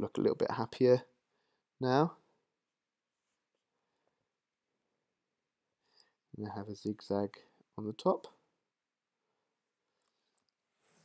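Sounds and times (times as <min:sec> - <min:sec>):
person speaking: 0:00.0 - 0:01.1, 0:06.4 - 0:08.4.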